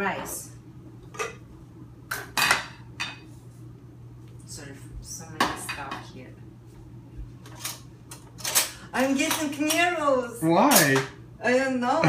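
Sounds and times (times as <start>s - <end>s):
metal cookware clattering: 10.6s - 11.1s.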